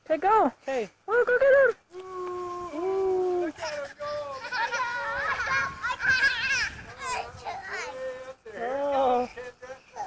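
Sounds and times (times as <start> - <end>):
children's rising and falling calls: 1.4 - 8.4.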